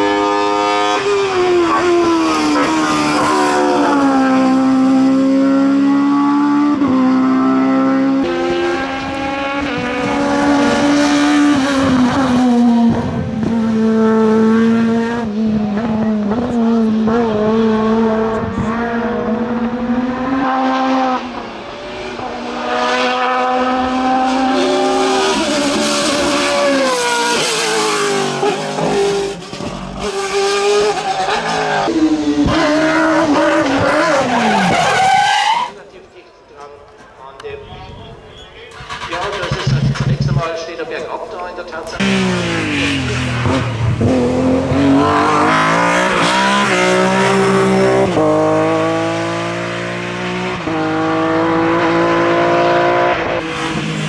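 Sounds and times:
racing car engines revving: 0.0s - 36.8s, 37.4s - 54.0s.

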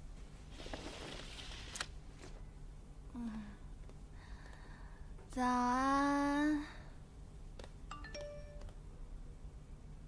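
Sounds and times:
curtain cloth sliding on rail: 0.5s - 1.9s.

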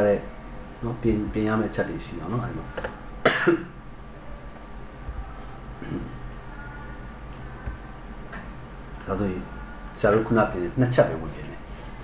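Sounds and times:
person coughing: 3.2s - 3.8s.

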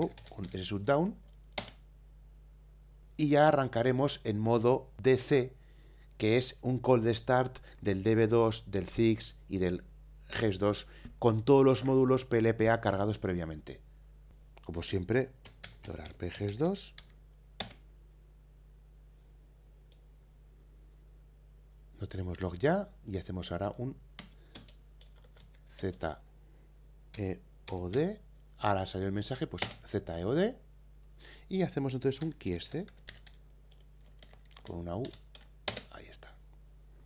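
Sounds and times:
computer keyboard keystroke: 0.0s - 0.6s, 1.3s - 1.8s, 15.4s - 17.8s, 24.2s - 25.6s, 29.6s - 29.8s, 32.2s - 35.9s
faint low hum: 0.0s - 37.0s.

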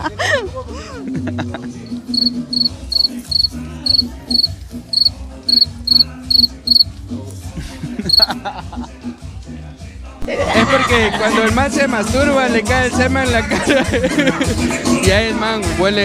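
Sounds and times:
cricket chirping: 2.0s - 6.8s.

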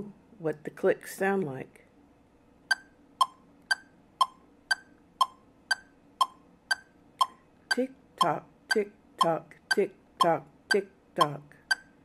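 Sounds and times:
metronome ticking: 2.7s - 12.0s.

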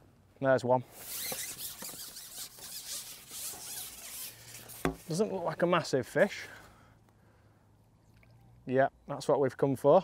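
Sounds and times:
fishing pole sections rasping: 0.9s - 5.5s.

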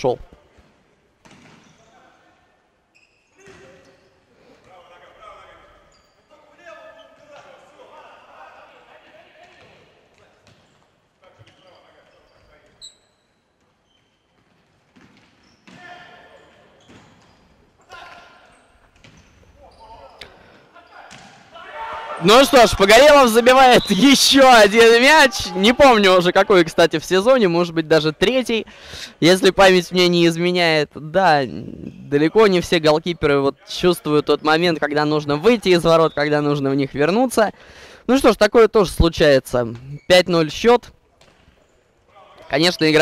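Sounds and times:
players calling out: 19.6s - 37.0s.

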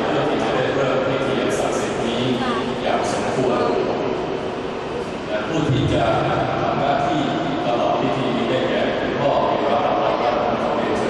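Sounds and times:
indistinct speech echoing: 0.0s - 4.2s, 5.2s - 11.0s
murmur of congregation: 0.0s - 11.0s.

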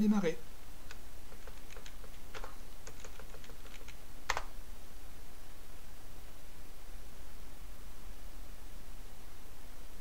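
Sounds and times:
loud key press: 1.3s - 4.5s.

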